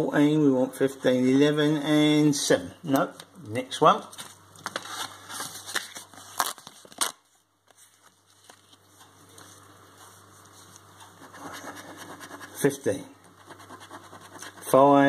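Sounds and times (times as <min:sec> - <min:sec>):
paper card rustling: 0:04.1 - 0:09.6.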